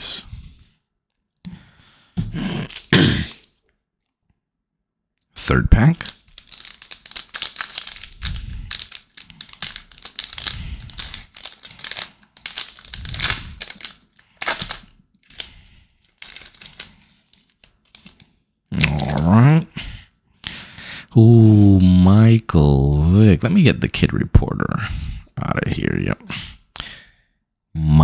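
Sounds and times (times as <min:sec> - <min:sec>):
foil wrapper crinkling and tearing: 0:05.4 - 0:19.2.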